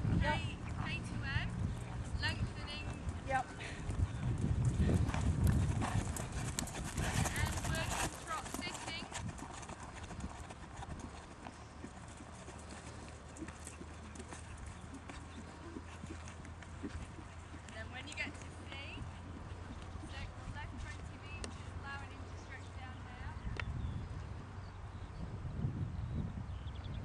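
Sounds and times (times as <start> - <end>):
horse hoofbeats on sand: 0.7 - 22.2.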